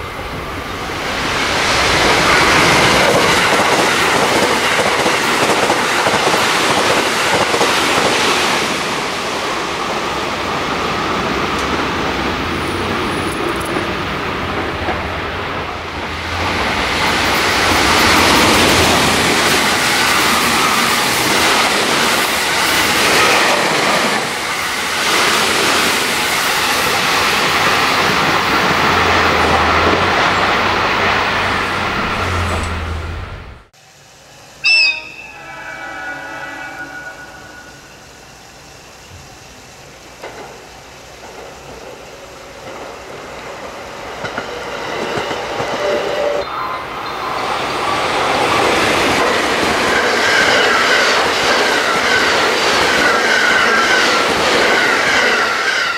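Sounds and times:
train passing at high speed: 0.0s - 55.9s
train horn blast: 34.6s - 38.1s.

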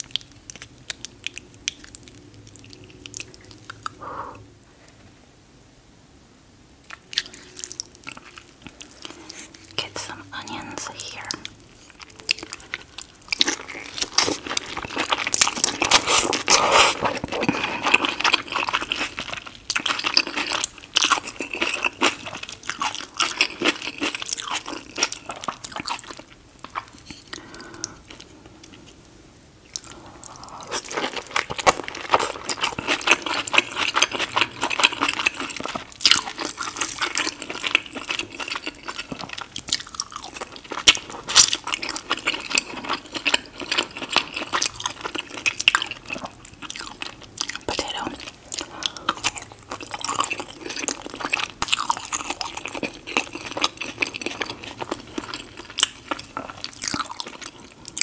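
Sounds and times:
chewing and wet mouth clicks: 0.0s - 4.0s, 29.7s - 58.0s.

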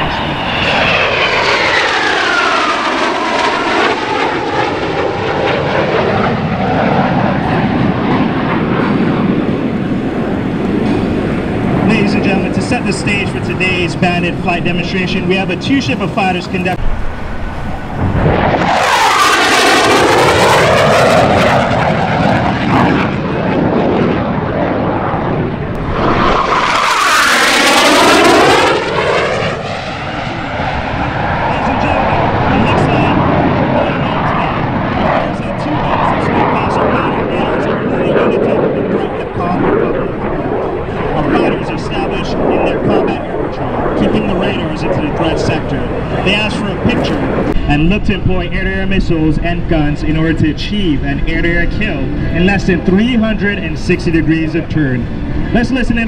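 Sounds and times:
jet fighters passing overhead: 0.0s - 56.0s
steady jet roar: 0.0s - 56.0s.

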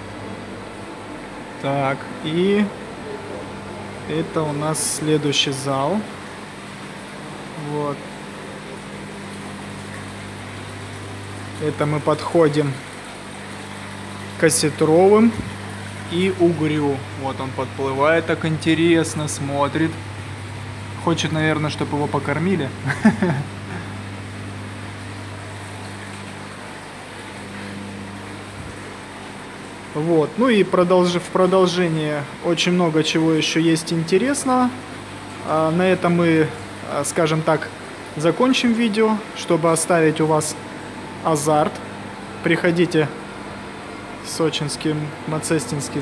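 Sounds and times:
deeper hum: 0.0s - 37.4s
machinery hum with hiss: 0.0s - 46.0s.

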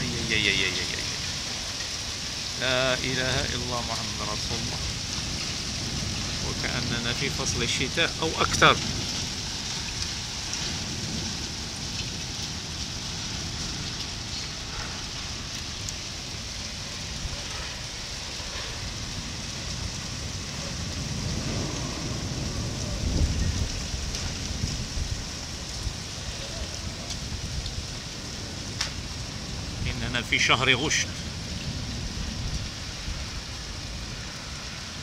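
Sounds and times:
heavy rain pouring: 0.0s - 35.0s.

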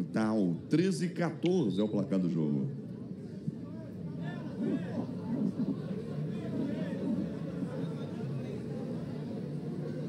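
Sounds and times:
background chatter of voices: 0.0s - 10.0s.

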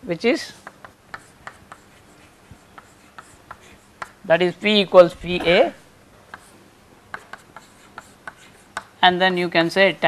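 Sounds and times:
chalk tapping and scratching: 0.5s - 5.6s, 6.3s - 9.0s.

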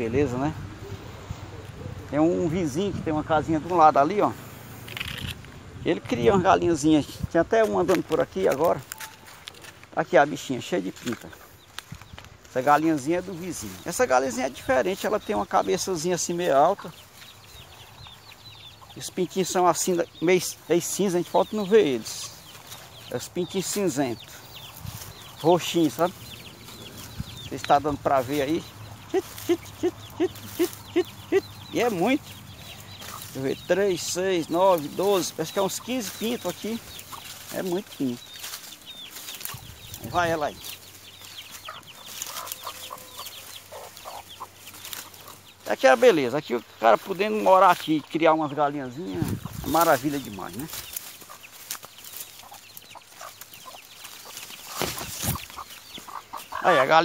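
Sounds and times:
chicks peeping: 0.0s - 57.0s
hen clucking softly: 17.6s - 19.6s, 34.5s - 38.2s, 39.4s - 45.5s, 50.6s - 51.6s, 52.2s - 57.0s.

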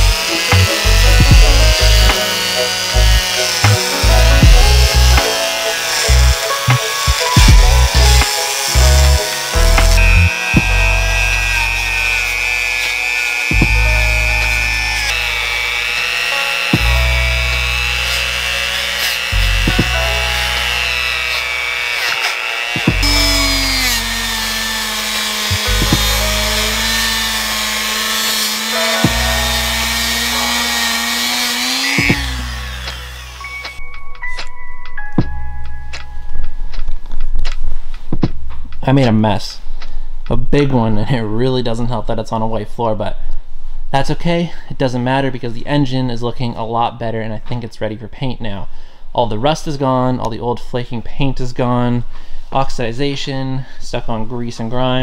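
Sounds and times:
background music with steady beat: 0.0s - 10.8s, 13.5s - 15.1s, 19.4s - 20.4s, 25.2s - 36.9s
rotary tool grinding metal: 0.0s - 33.8s.

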